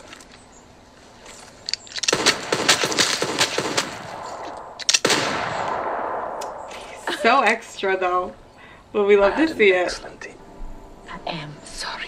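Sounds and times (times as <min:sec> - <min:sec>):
rapid gunshots: 0:02.1 - 0:06.4.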